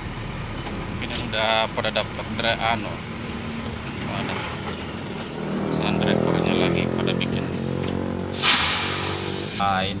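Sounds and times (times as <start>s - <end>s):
truck engine running: 0.0s - 10.0s.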